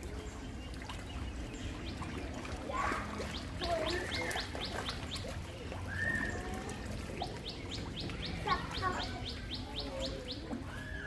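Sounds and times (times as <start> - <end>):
birds chirping: 0.0 - 11.0
whistled bird notes: 5.8 - 6.5.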